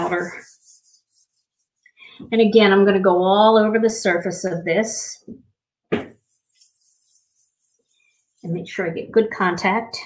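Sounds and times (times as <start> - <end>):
hands rubbing paper: 0.0 - 2.0, 6.0 - 8.7.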